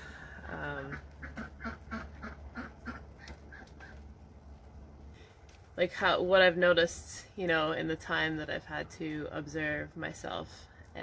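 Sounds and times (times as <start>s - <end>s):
ducks quacking: 0.6s - 4.0s.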